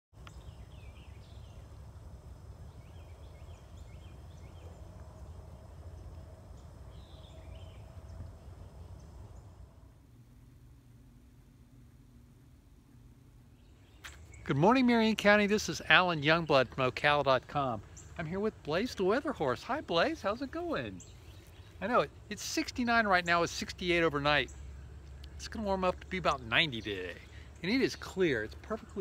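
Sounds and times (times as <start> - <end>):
low steady rumble: 0.2 - 29.0.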